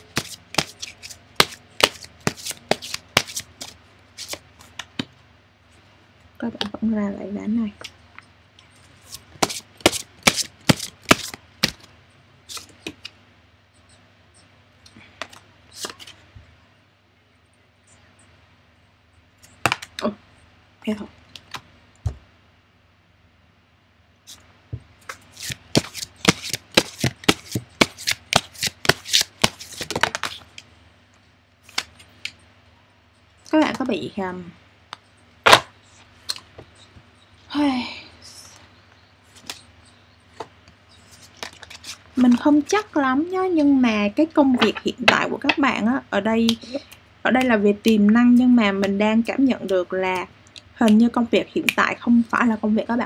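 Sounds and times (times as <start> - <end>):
cards being shuffled: 0.0 - 5.1, 9.1 - 11.9, 12.5 - 13.2, 15.2 - 16.2, 25.0 - 30.6, 31.7 - 32.1, 39.3 - 39.6, 41.1 - 42.4.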